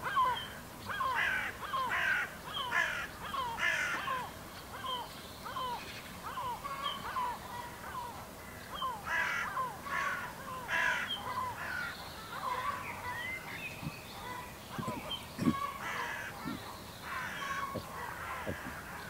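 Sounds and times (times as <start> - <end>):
harsh crow-like caws: 0.0 - 13.2, 14.2 - 19.0
small birds chirping: 0.0 - 19.0.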